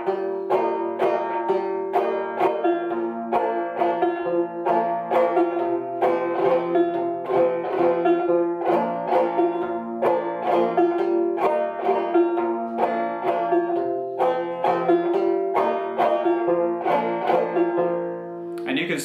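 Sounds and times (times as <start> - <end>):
banjo waltz plucked and strummed: 0.0 - 18.6.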